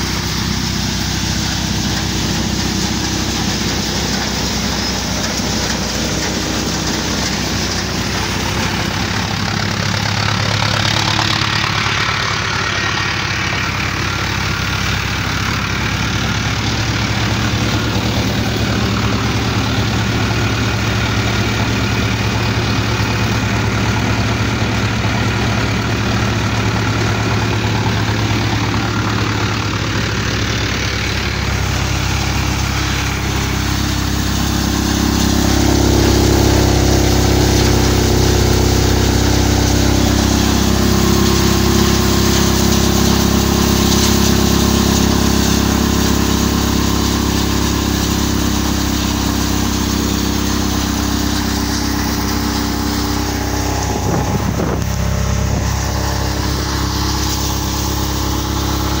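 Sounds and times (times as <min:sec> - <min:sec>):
tractor and thresher drone: 0:00.0 - 0:59.0.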